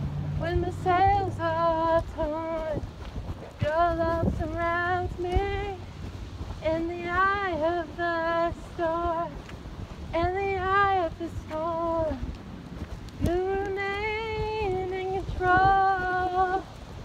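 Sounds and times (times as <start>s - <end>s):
woman singing unaccompanied: 0.3s - 2.9s, 3.6s - 9.4s, 10.1s - 12.3s, 13.2s - 16.8s.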